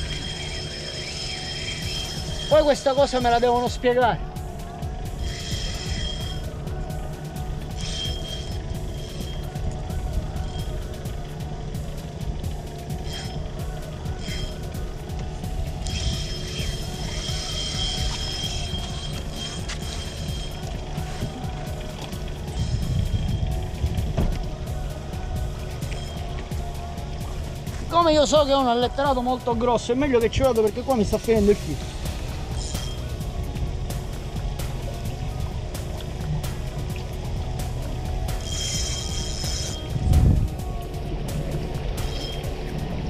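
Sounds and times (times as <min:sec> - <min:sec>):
fishing reel drag buzzing: 0:00.0 - 0:03.9, 0:05.0 - 0:24.2, 0:25.4 - 0:26.9, 0:30.5 - 0:35.0, 0:35.9 - 0:40.6, 0:41.9 - 0:42.8
low rumble of wind and sea: 0:02.4 - 0:38.5, 0:39.8 - 0:43.0.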